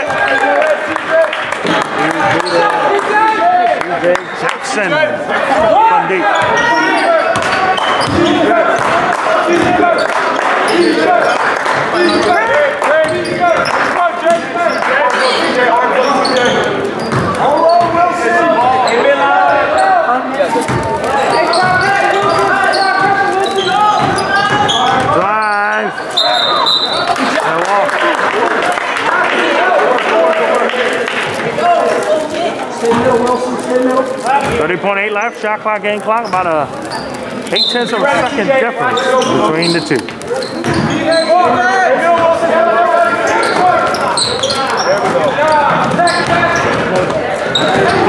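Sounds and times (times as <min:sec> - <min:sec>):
voices echoing in gym: 0:00.0 - 0:48.0
basketball bouncing on hardwood: 0:23.9 - 0:25.1.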